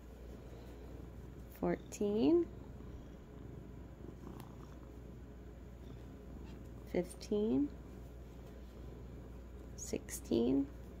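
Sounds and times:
cat purring: 0.3 - 8.0.

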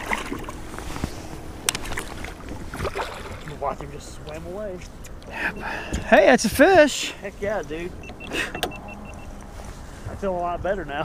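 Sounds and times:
short high beeps: 8.0 - 9.4.

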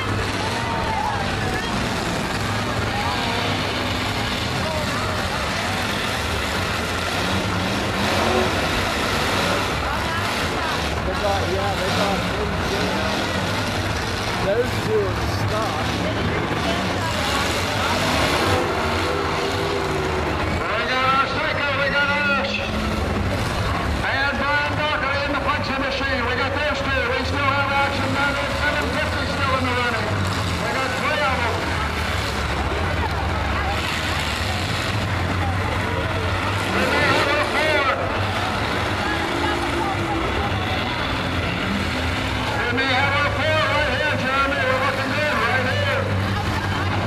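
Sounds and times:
car engines rumbling: 0.0 - 47.0
people's voices: 0.0 - 47.0.

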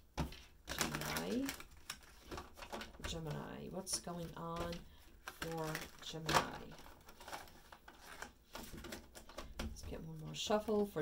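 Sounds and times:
cards being shuffled by hand: 0.2 - 9.6.

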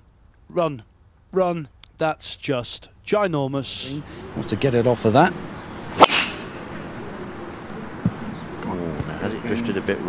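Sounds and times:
golf ball struck by driver: 5.9 - 6.7
brief hiss: 6.0 - 6.5.

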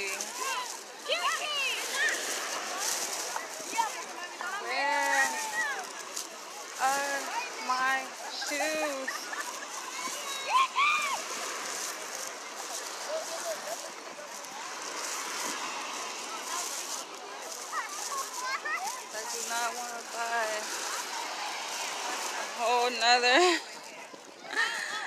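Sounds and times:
surf washing: 0.0 - 25.0.

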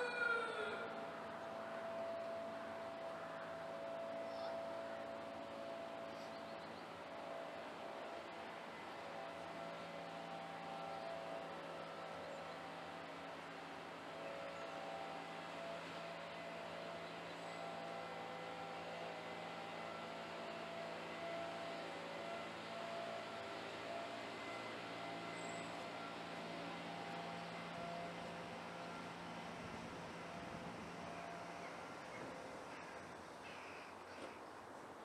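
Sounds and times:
steady low hum: 0.8 - 35.0.

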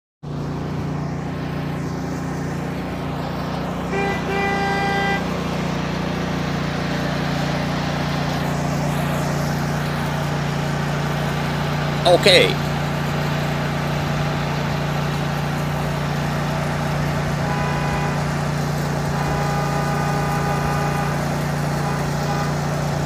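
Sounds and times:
low engine hum: 0.2 - 23.0
vehicle horn tooting: 3.8 - 5.5, 17.1 - 23.0.

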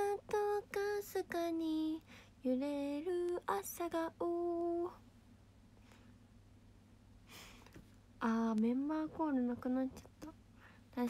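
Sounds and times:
woman singing a cappella: 0.0 - 5.0, 8.2 - 11.0.

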